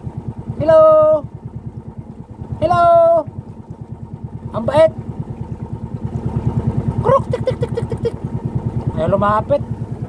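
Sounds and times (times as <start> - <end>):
boat engine running: 0.0 - 10.0.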